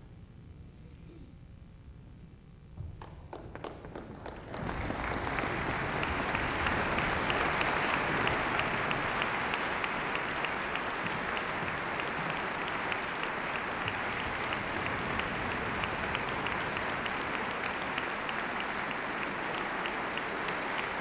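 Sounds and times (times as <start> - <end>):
audience applauding: 2.9 - 21.0.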